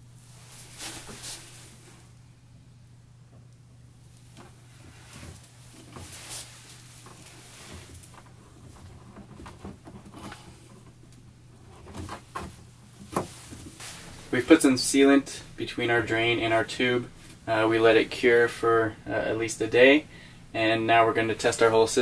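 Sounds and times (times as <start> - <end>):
faint steady hum: 0.0 - 22.0
plastic hose rustling and scraping: 0.2 - 2.2, 4.2 - 15.2.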